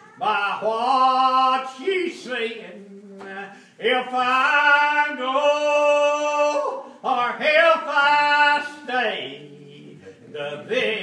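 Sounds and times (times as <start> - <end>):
man singing a hymn unaccompanied: 0.2 - 11.0.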